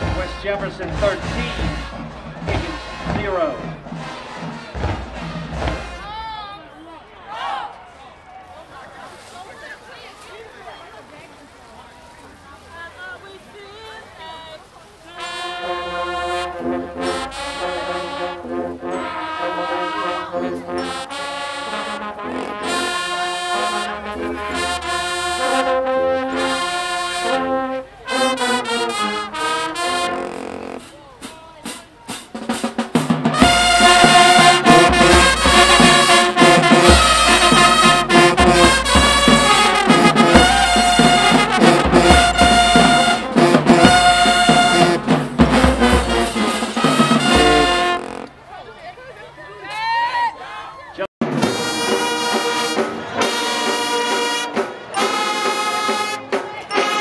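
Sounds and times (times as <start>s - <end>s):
marching band playing: 0.0s - 7.5s, 12.7s - 49.0s, 51.2s - 57.0s.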